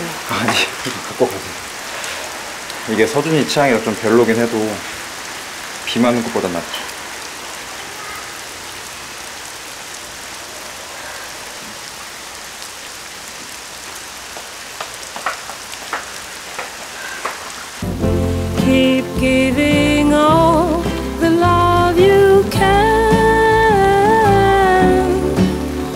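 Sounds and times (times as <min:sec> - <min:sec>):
steady rain falling: 0:00.0 - 0:25.9
light footsteps: 0:13.4 - 0:17.7
music: 0:17.8 - 0:25.9.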